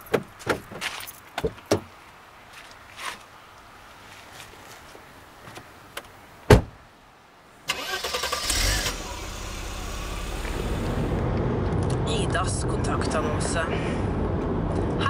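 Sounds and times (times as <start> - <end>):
loud thump: 6.5 - 6.8
car engine cranking and starting: 7.7 - 12.0.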